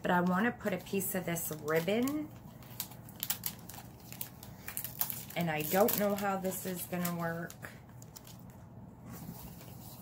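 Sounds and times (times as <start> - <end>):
ribbon crinkling and clicking: 1.3 - 8.5.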